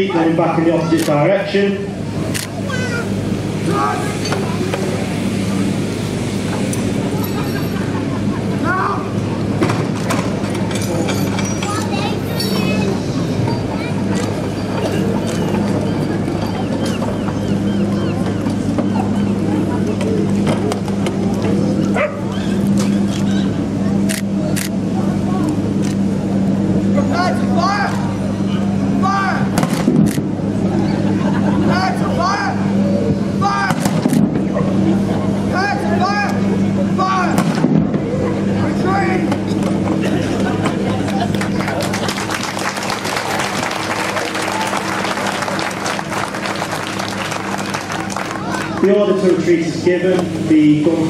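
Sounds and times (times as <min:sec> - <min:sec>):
steady low hum: 0:00.0 - 0:51.0
voices and shouts: 0:02.6 - 0:05.0, 0:08.5 - 0:09.3, 0:26.8 - 0:29.6, 0:30.9 - 0:33.9, 0:34.6 - 0:37.5, 0:38.2 - 0:39.4.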